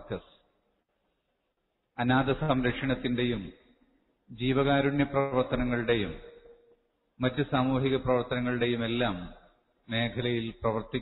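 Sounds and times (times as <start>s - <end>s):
man speaking: 0.0s - 0.4s, 2.0s - 3.7s, 4.3s - 6.6s, 7.2s - 11.0s.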